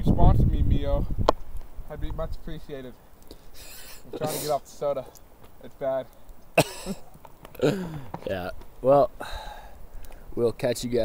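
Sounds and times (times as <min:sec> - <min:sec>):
man coughing: 0:06.6 - 0:08.1
man laughing: 0:06.6 - 0:08.1.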